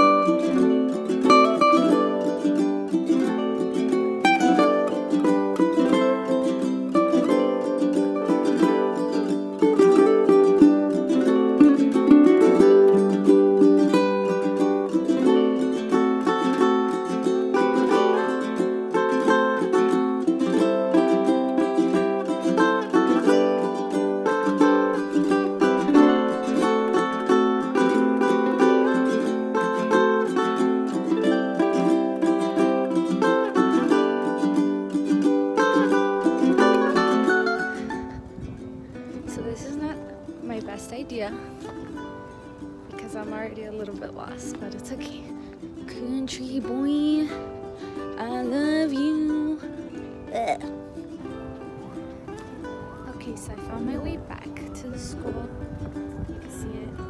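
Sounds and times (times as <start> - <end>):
plucked ukulele music: 0.0 - 57.0.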